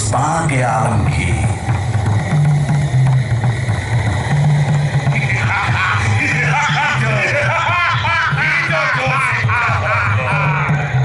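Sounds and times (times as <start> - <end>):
dramatic background music: 0.0 - 10.3.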